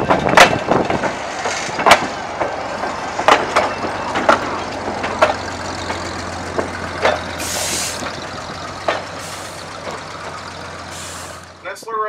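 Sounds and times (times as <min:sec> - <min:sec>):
locomotive engine running: 0:00.0 - 0:12.0
wheels clanking over rails: 0:00.0 - 0:12.0
short hisses of air: 0:07.4 - 0:08.0.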